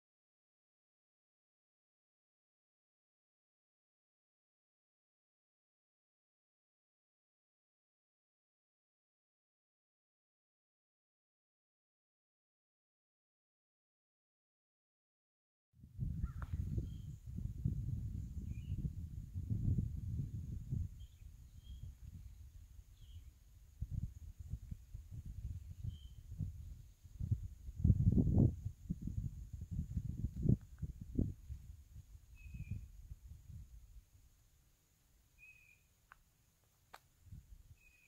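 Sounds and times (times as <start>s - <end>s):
wind buffeting microphone: 15.8s - 34.0s
bird chirps: 16.2s - 17.3s, 18.2s - 18.9s, 20.9s - 23.4s, 25.7s - 27.0s, 32.3s - 33.0s, 35.3s - 35.9s, 37.7s - 38.0s.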